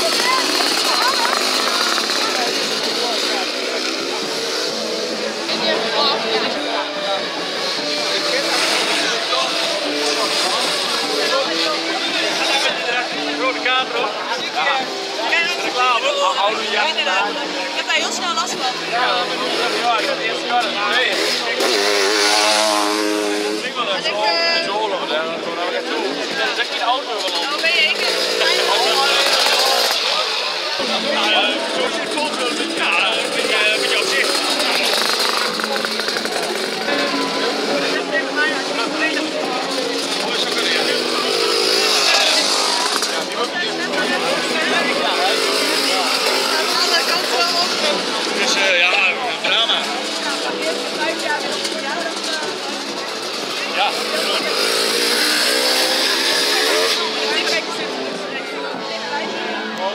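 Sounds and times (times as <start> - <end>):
motorcycle engines revving: 0.0 - 59.9
voices: 0.0 - 59.9.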